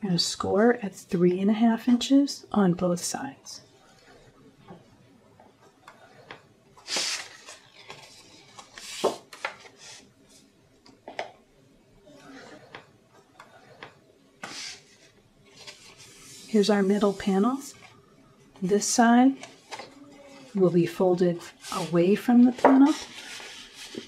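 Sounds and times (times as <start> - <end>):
paper rustling: 6.8 - 10.5, 14.4 - 18.0, 21.4 - 24.0.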